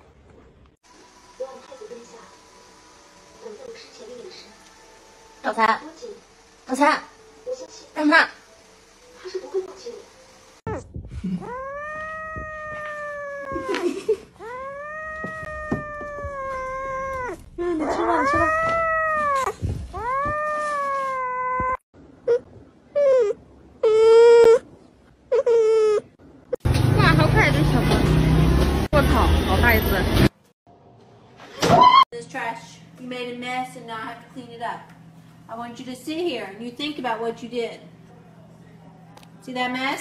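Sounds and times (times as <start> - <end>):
cat yowling: 11.4 - 21.8.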